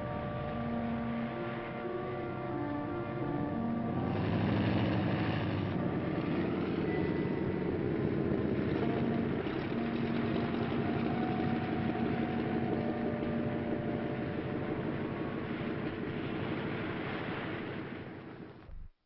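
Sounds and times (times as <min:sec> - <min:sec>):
faint sustained tones: 0:00.0 - 0:18.8
engine-like mechanical rumble: 0:00.0 - 0:19.0.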